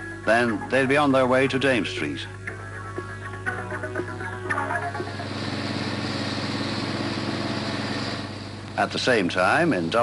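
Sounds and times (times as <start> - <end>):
vehicle engine running: 5.0 - 9.0.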